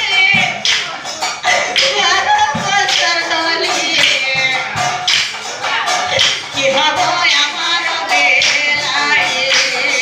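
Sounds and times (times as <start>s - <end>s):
woman singing a devotional chant: 0.0s - 0.8s, 1.4s - 5.2s, 5.8s - 10.0s
percussion strikes: 0.0s - 10.0s.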